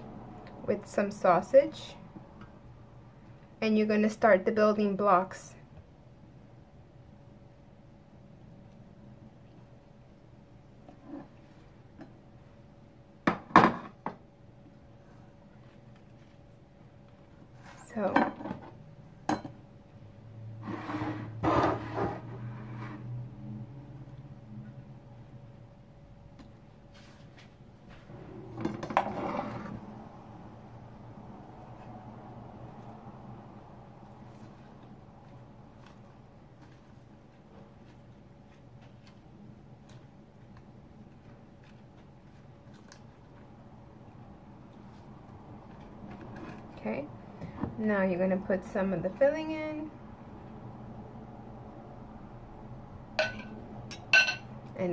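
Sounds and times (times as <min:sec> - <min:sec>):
steady low hum: 0:13.9 - 0:54.9.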